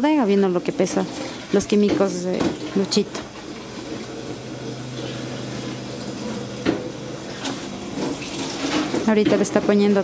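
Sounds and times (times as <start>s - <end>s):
tap water running into jug: 0.2s - 9.7s.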